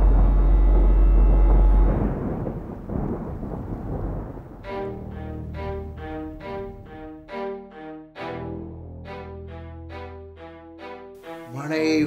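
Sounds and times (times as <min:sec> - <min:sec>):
deep rolling thunder: 0:00.0 - 0:07.4.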